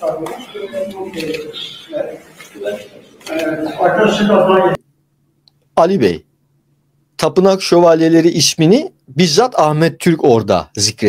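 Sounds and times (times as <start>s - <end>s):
people talking at once: 0.0s - 4.8s.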